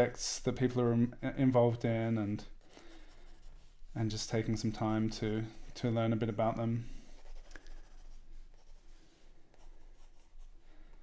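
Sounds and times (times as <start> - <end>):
pencil scratching on paper: 2.8 - 3.7, 7.0 - 10.6.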